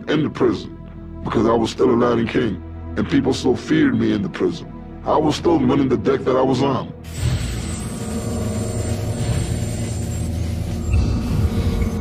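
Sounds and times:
low rumbling drone music: 0.0 - 12.0.

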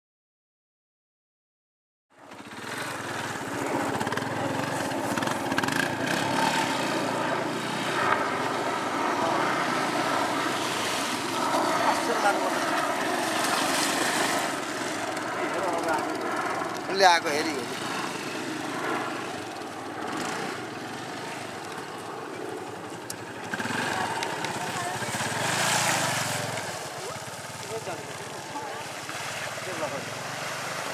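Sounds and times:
motorcycle engines revving: 2.2 - 30.9
people talking: 11.8 - 12.6, 15.5 - 16.1, 23.8 - 25.4, 26.9 - 28.9, 29.6 - 30.1.

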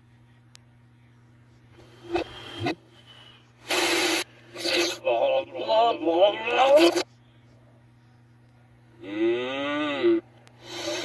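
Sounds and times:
steady low hum: 0.0 - 11.0
short noisy bursts: 3.6 - 5.0
garbled reversed voices: 4.5 - 7.1.

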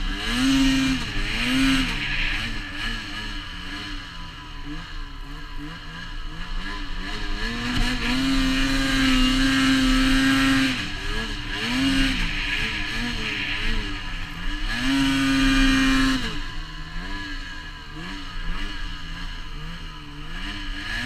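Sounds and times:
snowmobile engine revving: 0.0 - 21.0.

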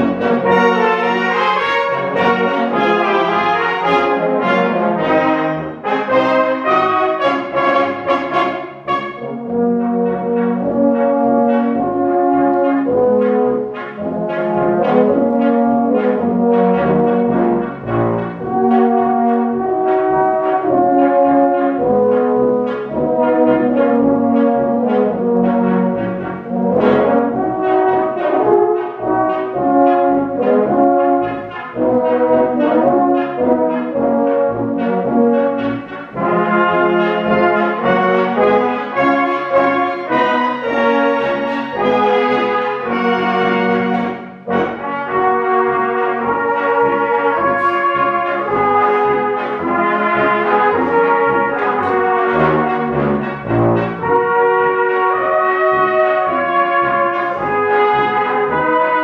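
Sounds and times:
brass band playing a dance tune: 0.0 - 59.0.

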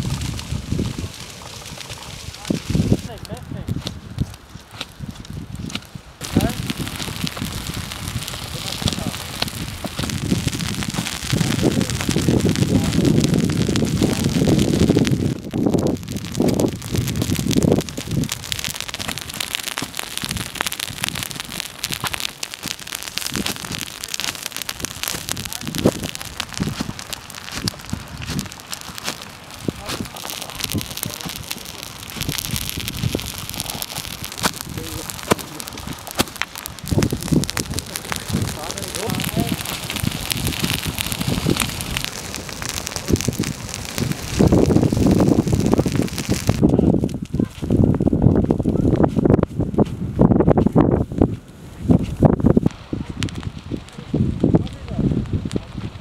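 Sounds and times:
brush fire crackling: 0.0 - 56.0
fire hose spraying water: 6.2 - 46.7.

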